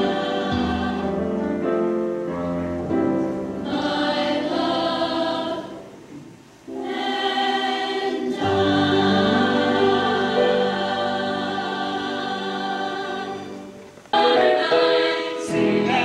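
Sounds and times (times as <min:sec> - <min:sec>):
choir singing in harmony: 0:00.0 - 0:02.2, 0:02.8 - 0:16.0.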